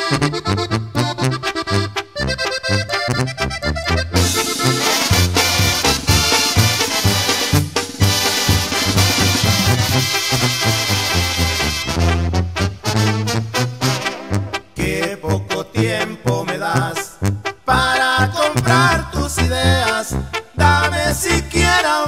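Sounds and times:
brass band playing: 0.0s - 21.6s
accordion: 0.0s - 22.0s
pulsing bass line: 2.3s - 12.5s.

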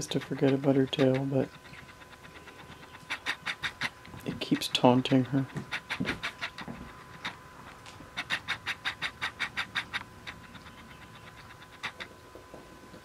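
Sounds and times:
cat claws scratching on rug: 0.0s - 12.1s.

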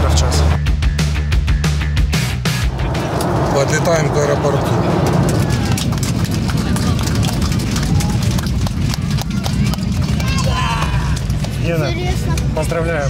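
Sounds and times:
airliner cabin rumble: 2.5s - 13.0s.

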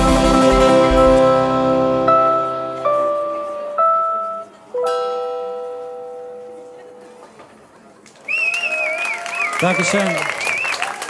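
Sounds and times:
acoustic rock song notes ringing: 0.0s - 7.4s.

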